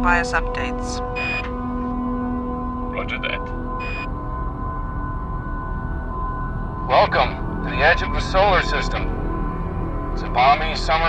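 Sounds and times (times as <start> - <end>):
low droning music: 0.0 - 11.0
electronic radio beep: 1.1 - 1.5, 3.8 - 4.1.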